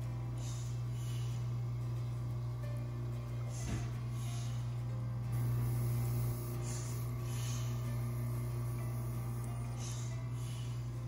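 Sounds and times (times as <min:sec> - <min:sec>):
compressor humming: 0:00.0 - 0:11.0
air hissing puff: 0:05.3 - 0:11.0.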